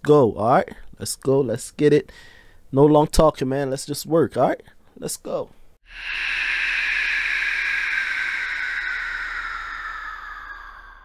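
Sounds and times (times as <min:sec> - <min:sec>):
hissing shimmer sinking in pitch: 0:05.8 - 0:11.0.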